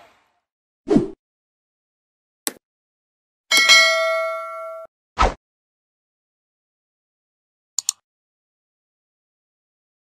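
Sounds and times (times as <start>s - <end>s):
notification bell ding: 3.5s - 4.9s.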